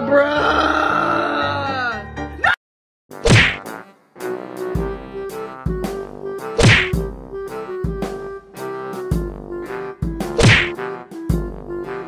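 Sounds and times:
loud whacks: 3.2 - 3.7, 6.6 - 7.0, 10.3 - 10.8
background music with repeating note: 3.4 - 12.0.

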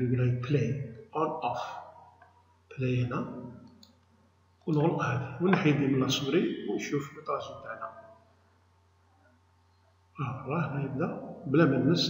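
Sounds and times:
man's voice: 0.0 - 1.8, 2.8 - 3.4, 4.7 - 8.0, 10.2 - 12.0
steady low hum: 0.0 - 12.0.

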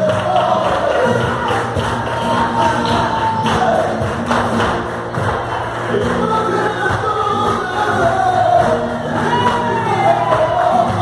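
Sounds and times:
hand claps: 0.0 - 11.0.

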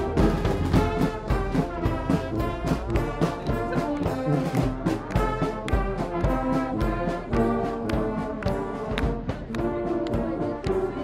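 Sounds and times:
marching brass band playing: 0.0 - 11.0
steady drumbeat: 0.0 - 11.0.

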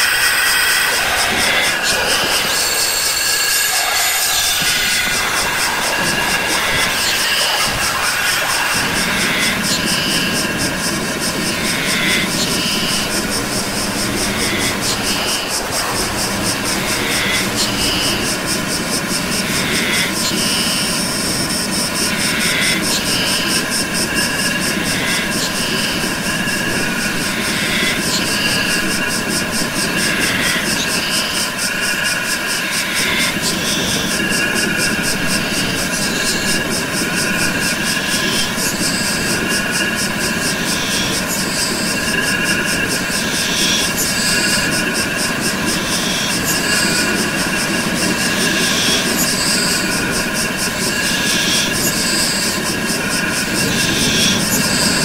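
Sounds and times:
dense electronic noise wall: 0.0 - 55.0.

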